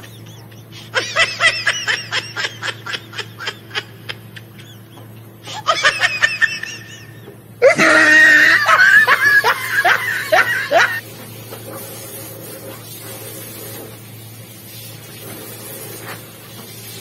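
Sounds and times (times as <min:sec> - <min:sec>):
woman giggling: 0:00.0 - 0:11.0.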